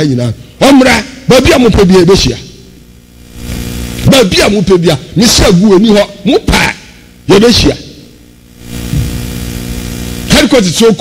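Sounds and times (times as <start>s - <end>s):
steady buzzy hum: 0.0s - 11.0s.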